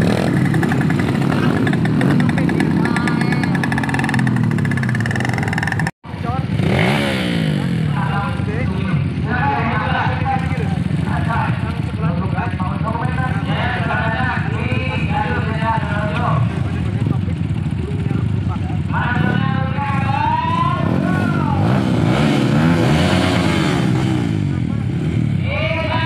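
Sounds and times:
trail bikes idling and revving: 0.0 - 26.0.

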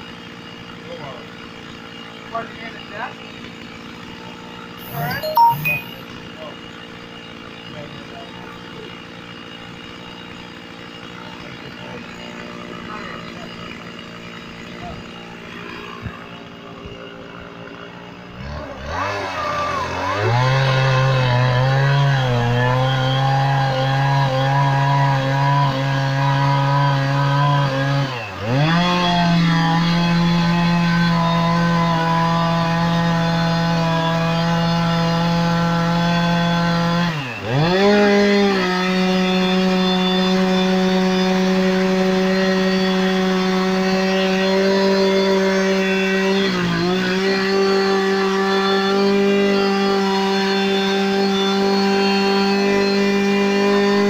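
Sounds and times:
chainsaw cutting log: 0.0 - 54.0.

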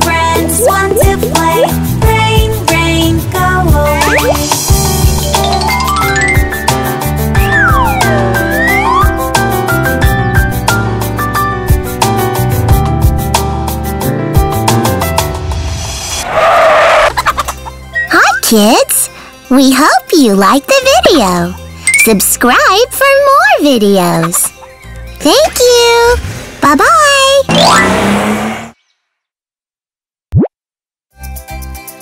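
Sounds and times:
children's song music: 0.0 - 15.3, 17.6 - 27.9
cartoon tyres screeching: 16.2 - 17.4, 27.4 - 28.8
cartoon pop sweeping upward: 30.3 - 30.5.

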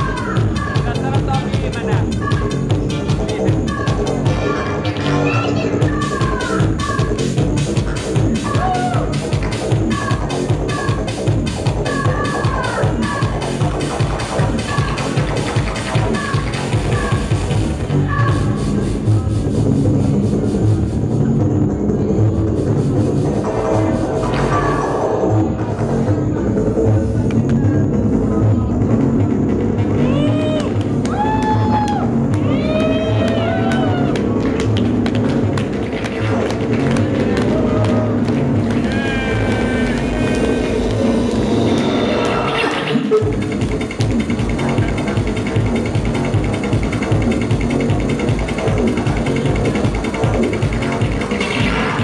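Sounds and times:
loud electronic music: 0.0 - 52.0
audience clapping: 30.6 - 42.4.

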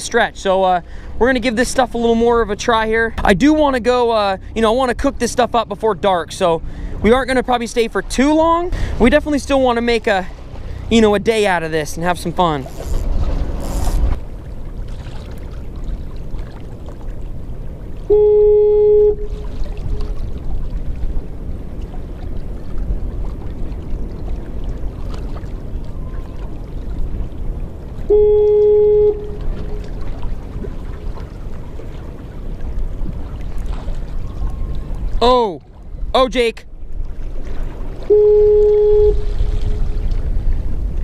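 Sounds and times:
loud steady horn blast: 18.1 - 19.4, 28.1 - 29.9, 38.0 - 39.8
wind buffeting microphone: 19.2 - 28.1, 29.3 - 41.0.

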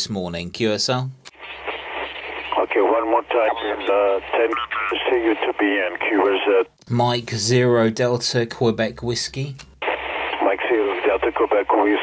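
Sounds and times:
radio hiss: 1.3 - 6.7, 9.8 - 12.0
thin narrow-band radio speech: 1.3 - 6.7, 9.8 - 12.0.

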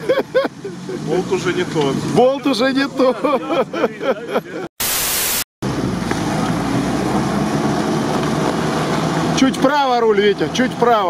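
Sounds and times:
static hiss burst: 4.8 - 5.5.

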